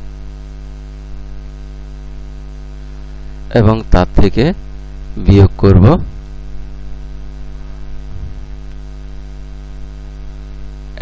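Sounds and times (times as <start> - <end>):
electrical mains hum: 0.0 - 11.0
person speaking: 3.5 - 6.3.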